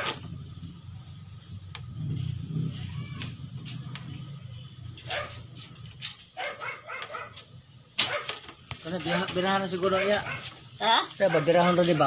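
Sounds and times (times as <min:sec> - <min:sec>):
small dog barking and yipping: 0:05.0 - 0:05.4, 0:06.4 - 0:08.3, 0:09.0 - 0:10.6, 0:11.2 - 0:12.0.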